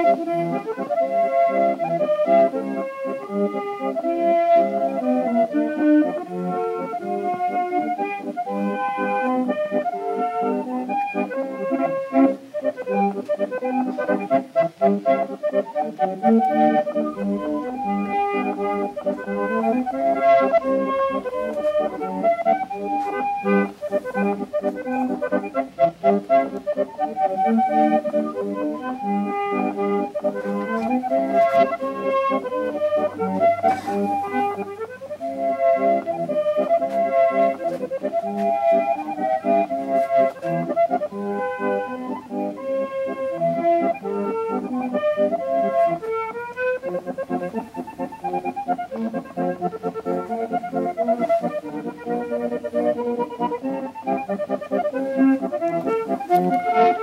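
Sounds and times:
accordion music: 0:00.0 - 0:57.0.

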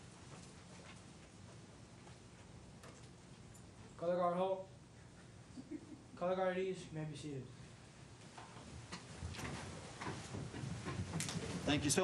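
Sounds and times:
shuffling feet: 0:08.3 - 0:12.0
chairs clicking and knocking: 0:08.4 - 0:12.0.

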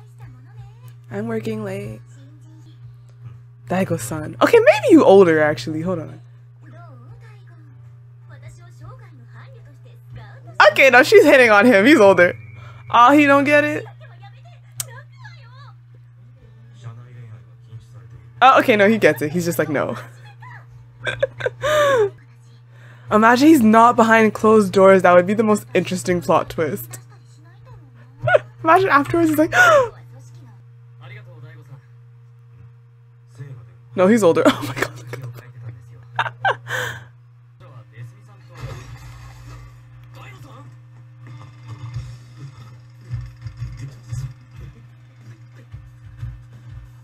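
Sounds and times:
steady low hum: 0:00.0 - 0:47.0
woman laughing: 0:19.8 - 0:22.2, 0:28.2 - 0:30.0, 0:34.3 - 0:35.2, 0:36.2 - 0:37.1
woman gasping: 0:21.6 - 0:22.2, 0:29.5 - 0:30.0, 0:36.5 - 0:37.1.

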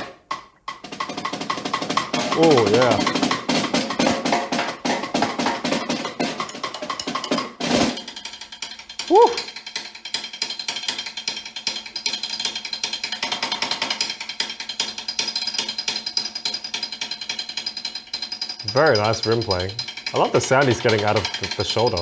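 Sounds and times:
snare drum played with sticks: 0:00.0 - 0:22.0
person exclaiming: 0:02.3 - 0:03.1, 0:09.1 - 0:09.5.

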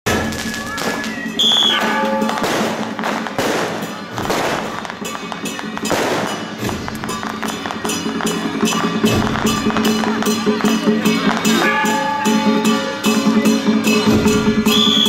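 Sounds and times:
drums gongs and cymbals: 0:00.1 - 0:15.0
firecracker crackling: 0:00.1 - 0:15.0
high whistle: 0:01.3 - 0:02.3, 0:14.6 - 0:15.0.

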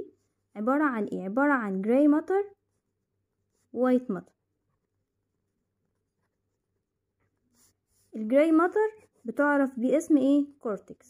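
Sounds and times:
ballpoint pen scratching on paper: 0:02.5 - 0:10.4.

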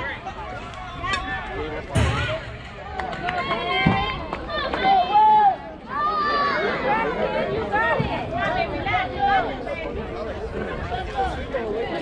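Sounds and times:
indistinct chatter of voices: 0:00.0 - 0:12.0.

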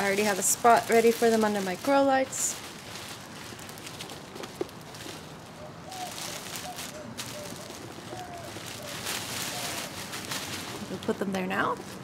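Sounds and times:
plastic bag rustling and crinkling: 0:00.0 - 0:12.0.

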